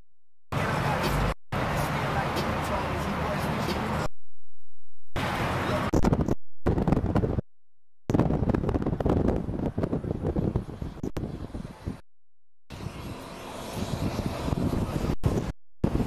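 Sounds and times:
vehicle ride rumble: 0.5 - 4.1, 5.2 - 7.4, 8.1 - 12.0, 12.7 - 16.0
wind noise: 5.8 - 7.4, 8.1 - 12.0, 12.7 - 16.0.

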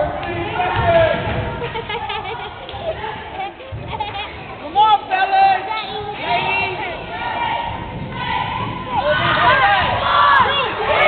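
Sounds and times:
children shouting in echoing gym: 5.5 - 11.0.

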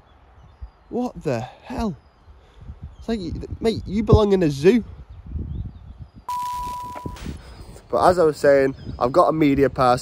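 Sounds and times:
high beep: 6.3 - 7.4.

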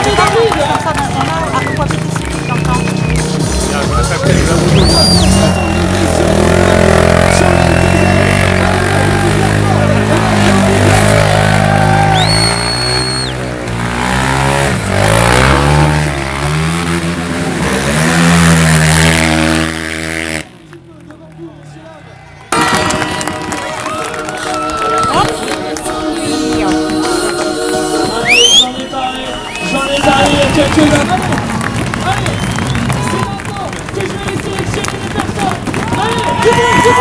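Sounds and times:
loud music: 0.0 - 12.9, 22.5 - 31.3
motorcycle engine revving hard: 0.0 - 20.6.

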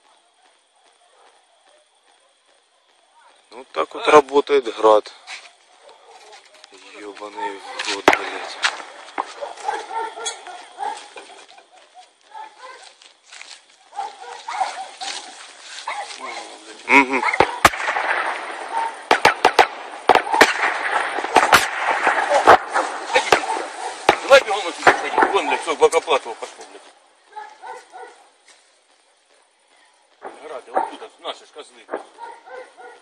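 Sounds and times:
faint outdoor hiss: 0.0 - 33.0
dog barking: 0.9 - 2.9, 5.7 - 6.5, 9.2 - 11.2, 12.3 - 13.0, 13.9 - 16.6, 17.2 - 17.6, 18.6 - 19.1, 22.3 - 24.4, 25.2 - 25.8, 27.3 - 28.3, 30.4 - 31.1, 32.0 - 33.0.

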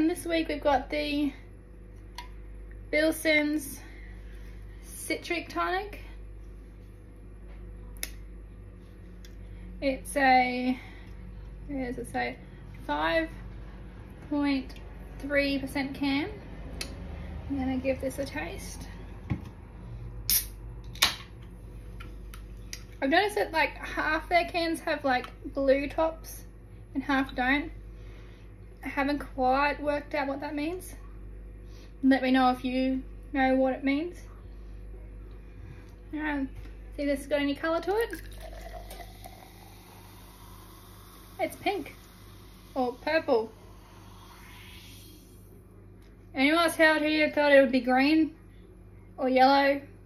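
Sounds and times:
low steady hum: 0.0 - 50.0
drink can hissing: 38.9 - 45.4.

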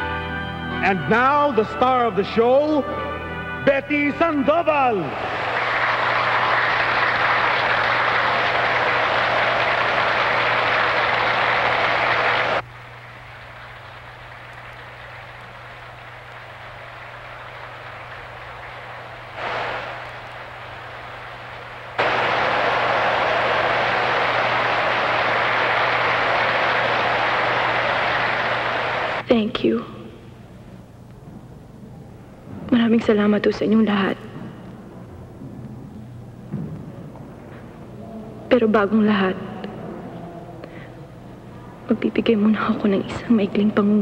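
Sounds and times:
audience applauding: 4.9 - 29.2
low hum: 7.0 - 43.7.

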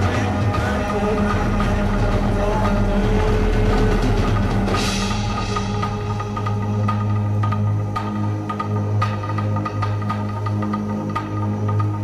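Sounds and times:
live metal band playing: 0.0 - 9.6.

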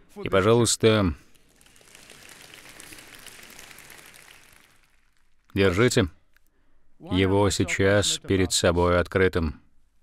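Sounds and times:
congregation clapping lightly: 1.2 - 6.1.

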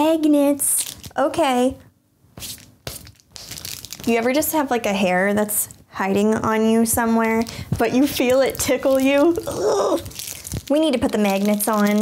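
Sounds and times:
plastic packaging crinkling: 0.6 - 1.6, 2.4 - 5.8, 7.2 - 12.0.

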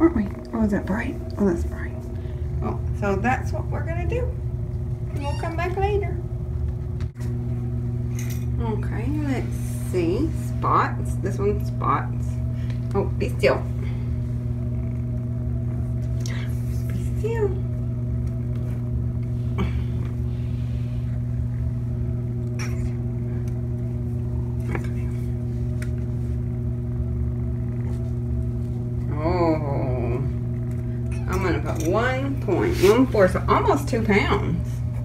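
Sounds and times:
low electrical hum: 0.0 - 35.0.

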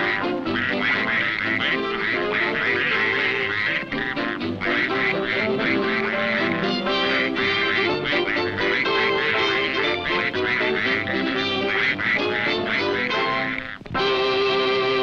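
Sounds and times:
cartoon duck quacking voice: 0.0 - 15.0
orchestral cartoon music: 0.0 - 15.0.

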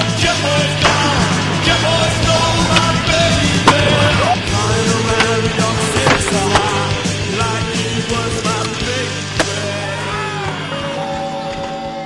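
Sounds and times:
skateboard wheels rolling on concrete: 0.0 - 12.0
steady music: 0.0 - 12.0
skateboard clacks: 5.1 - 6.9.

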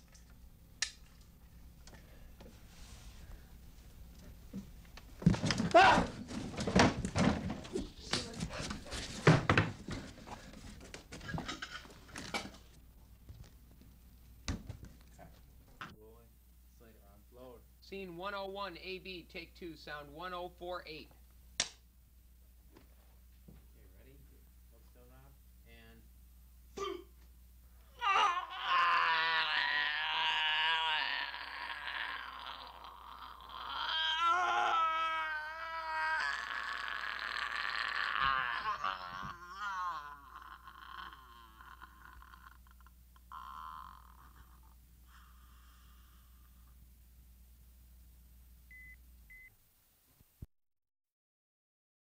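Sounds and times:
person screaming and wailing: 5.6 - 6.1, 27.9 - 46.6.

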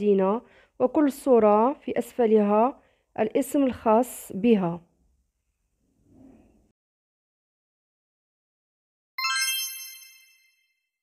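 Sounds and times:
bright chime: 9.2 - 10.9.

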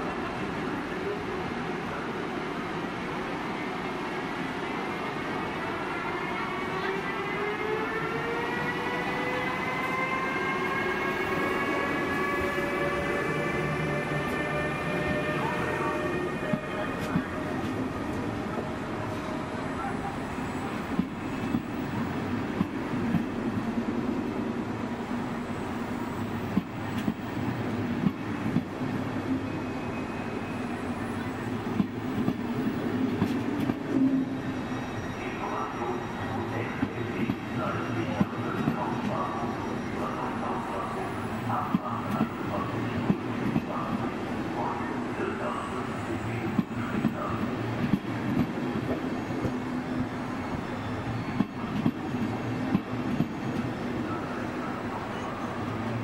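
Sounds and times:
train coaches rumbling: 0.0 - 56.0
electric locomotive whine: 0.5 - 56.0.

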